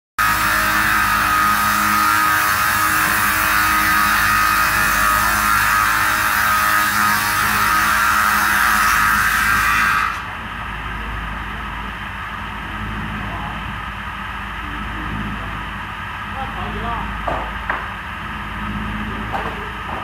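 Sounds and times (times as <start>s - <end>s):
circular saw cutting wood: 0.2s - 10.4s
saw machine idling: 0.2s - 20.0s.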